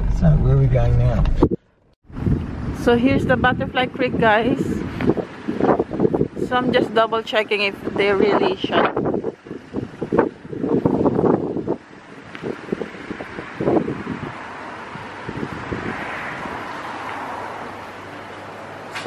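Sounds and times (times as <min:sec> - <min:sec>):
wind buffeting microphone: 0:00.0 - 0:17.7
distant traffic rushing: 0:00.0 - 0:19.0.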